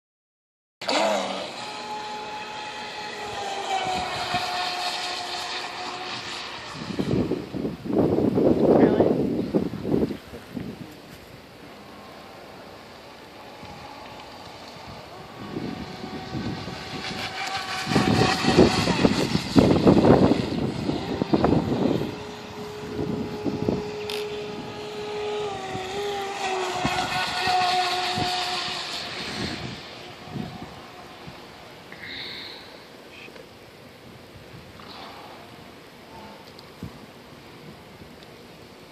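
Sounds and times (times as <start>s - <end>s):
electric boat motor whining: 0.8s - 33.0s.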